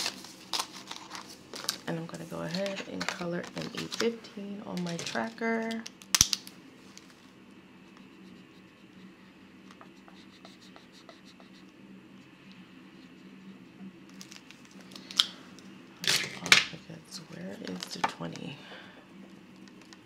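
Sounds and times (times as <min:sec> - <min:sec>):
paper and plastic rustling: 0:00.0 - 0:07.3, 0:14.1 - 0:15.4, 0:17.4 - 0:18.5
low steady hum: 0:00.0 - 0:20.0
marker pen scratching on paper: 0:07.8 - 0:11.8, 0:12.9 - 0:13.8.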